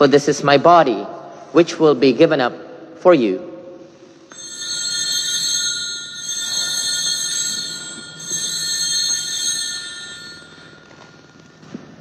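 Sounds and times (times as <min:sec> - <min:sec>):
small bells ringing: 0:04.3 - 0:12.0.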